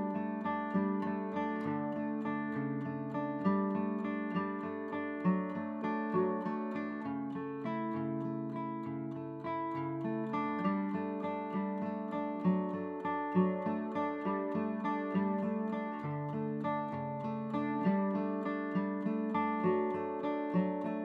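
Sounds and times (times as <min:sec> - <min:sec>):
acoustic guitar music: 0:00.0 - 0:21.0.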